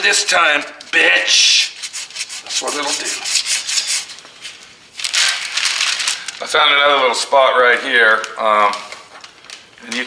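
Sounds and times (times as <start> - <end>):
sandpaper rasping on paint: 1.3 - 4.2.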